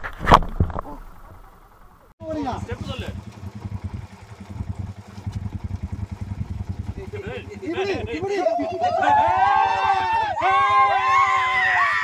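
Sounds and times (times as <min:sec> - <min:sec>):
motorcycle engine running: 0:02.2 - 0:10.8
voices calling out: 0:07.0 - 0:12.0
group cheering: 0:08.1 - 0:12.0.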